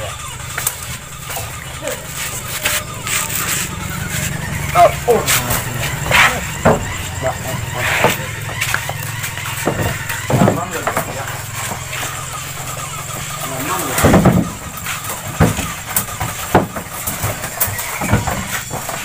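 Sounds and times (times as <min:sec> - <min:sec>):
fruit and basket thudding on wood: 0:07.8 - 0:19.0.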